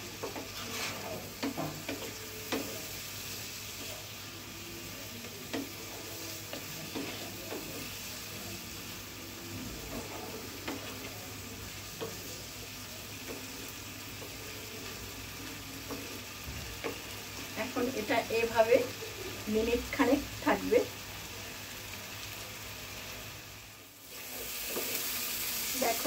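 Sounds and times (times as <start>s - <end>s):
spatula scraping frying pan: 0.0s - 4.1s, 5.2s - 8.3s
oil sizzling: 0.0s - 26.0s
spatula knocking pan: 0.1s - 2.8s.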